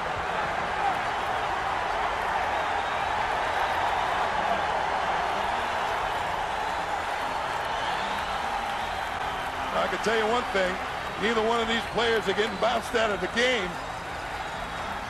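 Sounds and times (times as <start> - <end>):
arena crowd din: 0.0 - 15.0.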